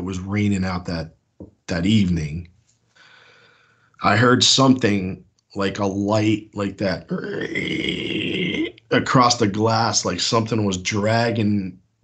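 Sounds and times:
man imitating a squeak: 7.1s - 8.8s.

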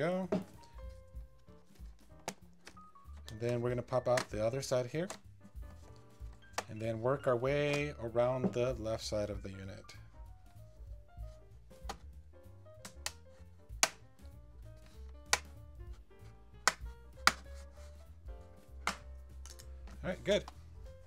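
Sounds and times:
soft background music: 0.0s - 21.0s.

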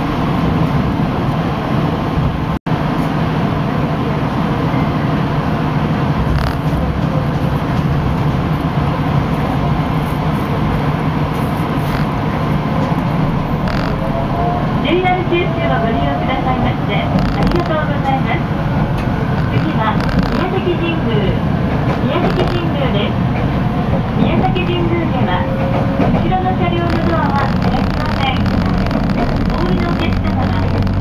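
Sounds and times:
train running noise: 0.0s - 31.0s
passengers talking: 2.8s - 31.0s.

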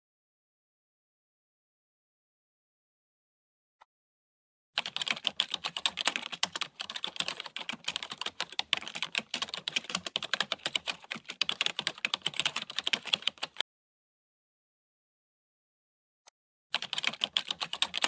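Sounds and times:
computer keyboard typing: 4.8s - 13.6s, 16.8s - 18.0s.

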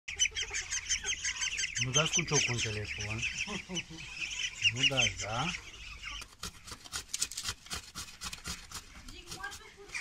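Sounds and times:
ducklings peeping: 0.1s - 7.0s.

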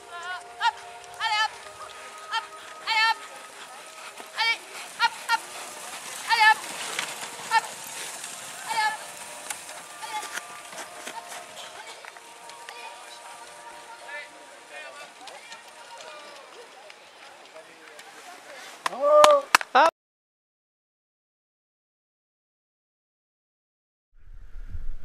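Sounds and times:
people shouting calls: 0.0s - 16.8s
scattered voices: 0.0s - 18.8s.

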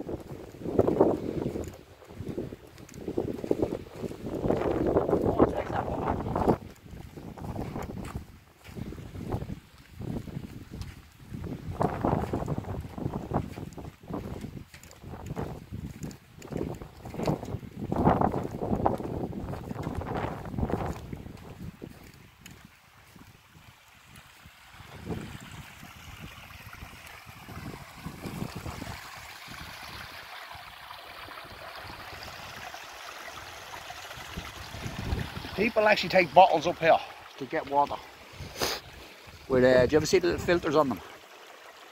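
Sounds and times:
wind buffeting microphone: 0.0s - 32.8s, 33.4s - 40.9s
stream running over stones: 0.0s - 41.9s.

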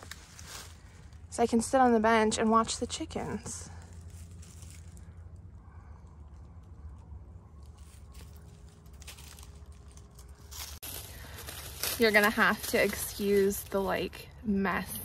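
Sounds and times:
footsteps crunching dry leaves: 0.0s - 1.3s, 3.7s - 5.3s, 7.6s - 14.1s
low steady rumble: 0.0s - 15.0s
scattered crackles: 3.6s - 14.2s.

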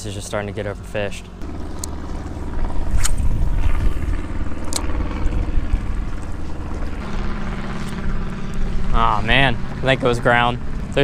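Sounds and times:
spinning reel gear whir: 1.3s - 11.0s
low wind rumble on microphone: 1.4s - 11.0s
sharp click: 2.9s - 3.3s.

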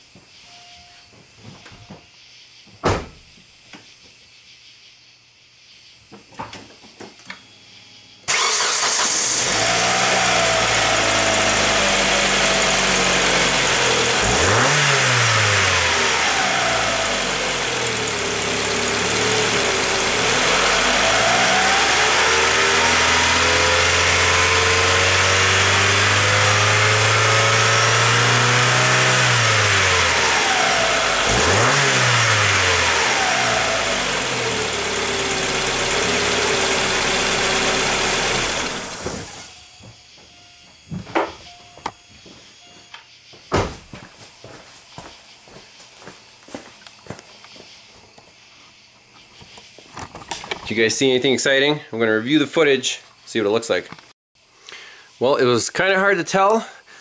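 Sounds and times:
car engine revving: 8.3s - 39.5s.

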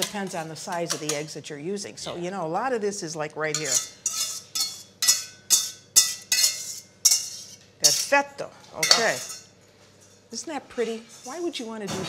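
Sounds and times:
fork clinking on metal bowl: 3.5s - 8.2s, 8.8s - 9.5s.

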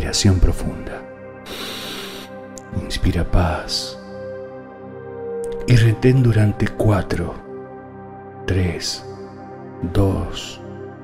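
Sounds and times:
ambient music pad: 0.0s - 11.0s
deep breathy inhalation: 1.4s - 2.4s.

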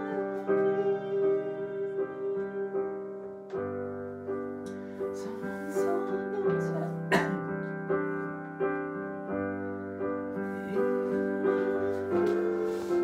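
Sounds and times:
electronic piano chords: 0.0s - 13.0s.

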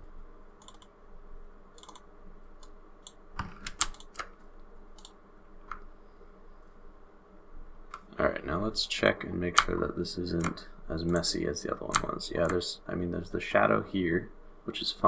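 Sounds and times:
faint steady hum: 0.0s - 15.0s
computer mouse and keyboard clicks: 0.6s - 0.9s, 1.8s - 2.0s, 2.6s - 4.4s.

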